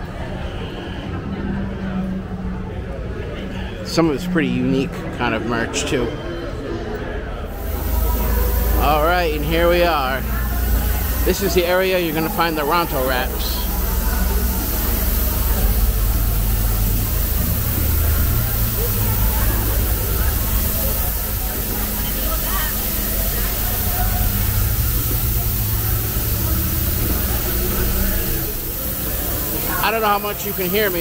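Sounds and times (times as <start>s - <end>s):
crowd chatter: 0.0s - 31.0s
engine rumble with hiss: 7.5s - 31.0s.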